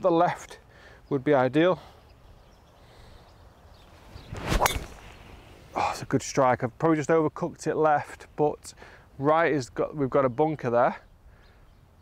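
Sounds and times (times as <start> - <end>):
golf club swing whoosh: 4.2 - 5.4
golf club striking ball: 4.4 - 5.2.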